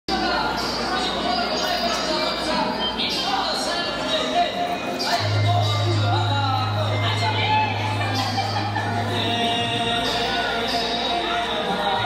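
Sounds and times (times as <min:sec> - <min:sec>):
voices in a large hall: 0:00.1 - 0:12.0.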